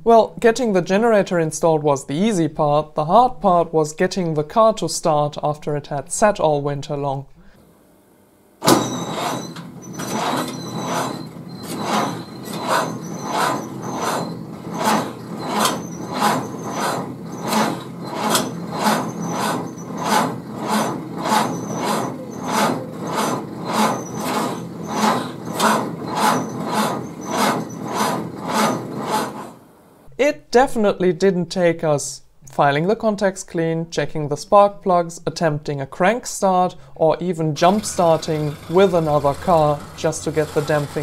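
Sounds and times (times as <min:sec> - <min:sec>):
engine cranking with starter: 0:08.6 - 0:29.6, 0:37.6 - 0:41.0.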